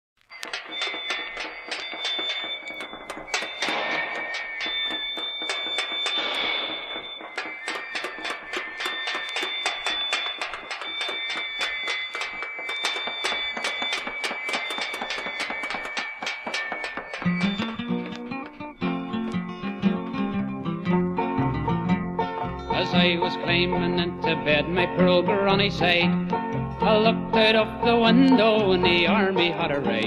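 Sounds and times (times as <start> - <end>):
bin lids banging: 0.4 - 18.6.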